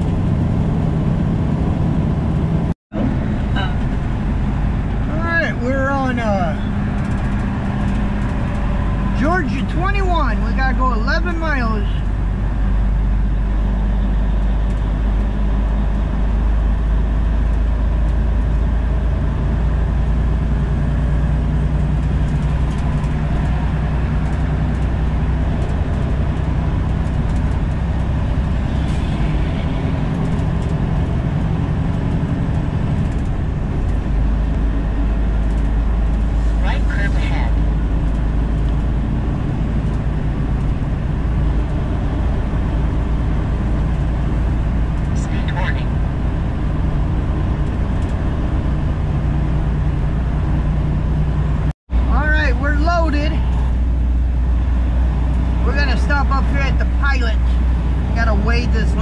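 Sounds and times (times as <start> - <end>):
road noise inside cab: 0.0 - 59.0
truck diesel engine drone: 0.0 - 59.0.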